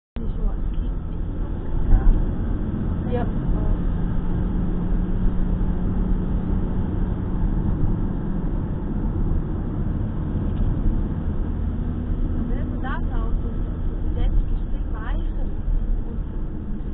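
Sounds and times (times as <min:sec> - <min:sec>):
car engine and road rumble: 0:00.2 - 0:16.9
constant drone: 0:00.2 - 0:16.9.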